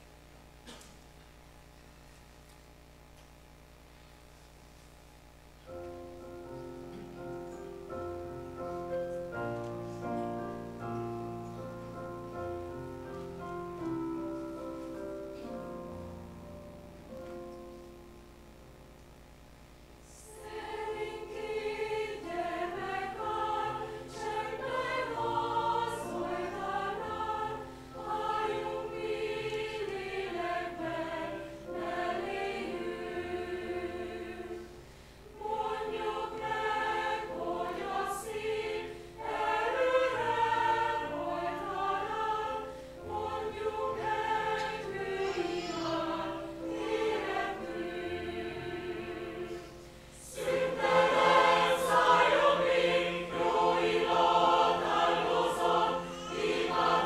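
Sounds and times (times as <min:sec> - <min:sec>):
mixed choir singing: 0:20.1 - 0:57.0.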